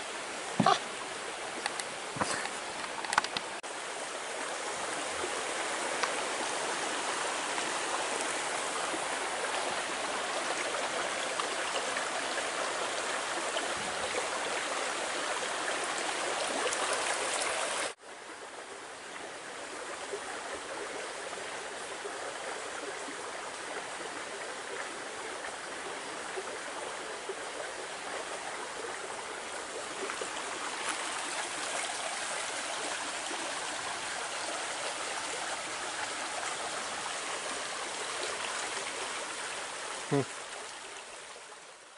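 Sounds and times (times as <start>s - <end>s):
creek running over stones: 0.0s - 41.9s.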